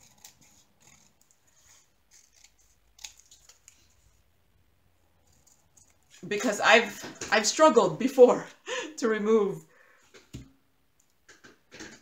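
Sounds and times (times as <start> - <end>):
scissors snipping paper: 0.0 - 4.0.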